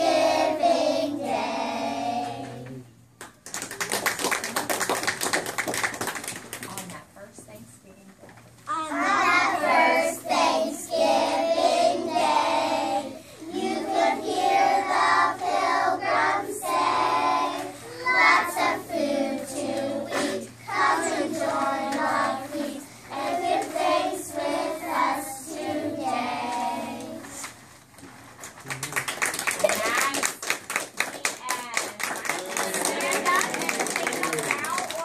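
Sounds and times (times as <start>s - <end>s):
young children singing: 0.0s - 2.8s, 8.7s - 27.5s.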